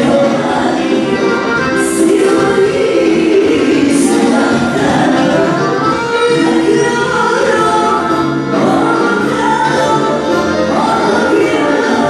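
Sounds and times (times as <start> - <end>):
piano accordion: 0.0 - 12.0
women singing: 0.0 - 12.0.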